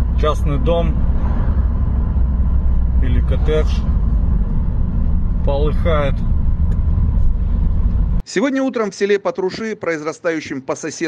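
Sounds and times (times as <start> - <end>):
car engine and road noise: 0.0 - 8.3.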